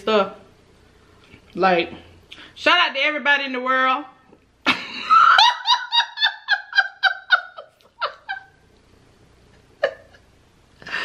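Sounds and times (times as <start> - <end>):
woman laughing: 4.7 - 8.6, 9.7 - 10.3.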